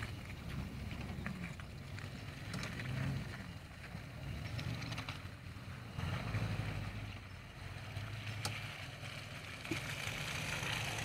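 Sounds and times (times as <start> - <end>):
engine rumbling under load: 0.0 - 11.0.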